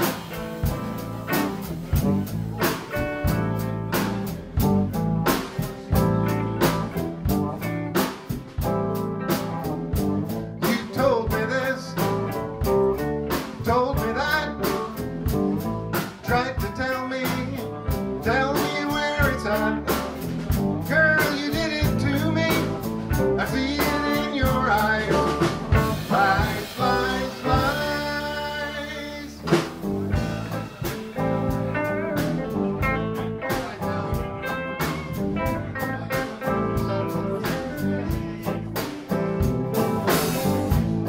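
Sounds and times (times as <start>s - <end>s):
bent guitar melody notes: 0.0s - 41.0s
blues band playing: 0.0s - 41.0s
drum kit beat: 0.0s - 41.0s.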